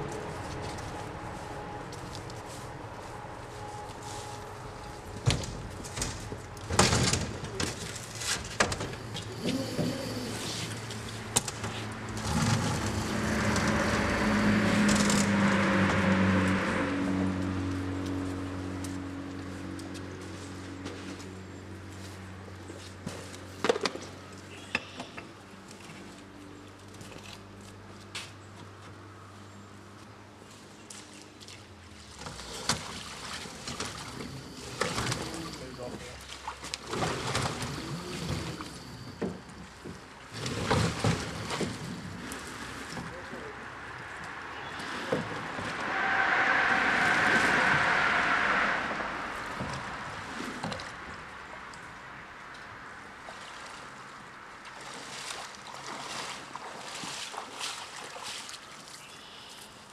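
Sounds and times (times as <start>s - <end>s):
water splashing and sloshing: 0.0s - 29.1s, 29.9s - 59.9s.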